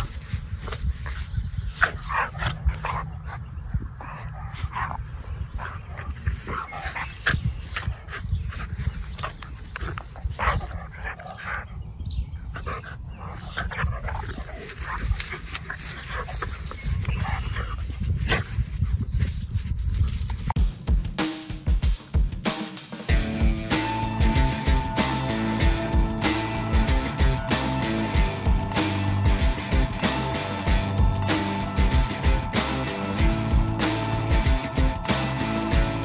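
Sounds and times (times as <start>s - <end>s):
dogs play-fighting vocalizations: 1.8s - 11.8s, 12.4s - 17.8s.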